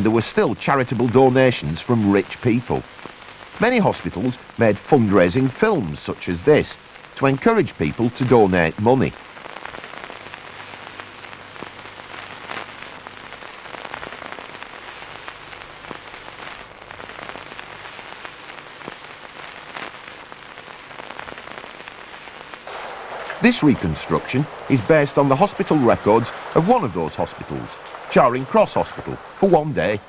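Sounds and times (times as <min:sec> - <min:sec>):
crackling hiss: 0:00.0 - 0:30.0
faint low hum: 0:10.0 - 0:30.0.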